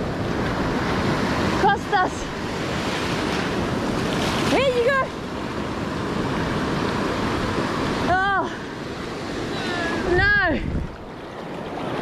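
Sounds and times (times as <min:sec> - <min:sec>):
surf breaking on beach: 0:00.0 - 0:12.0
wind buffeting microphone: 0:08.8 - 0:12.0.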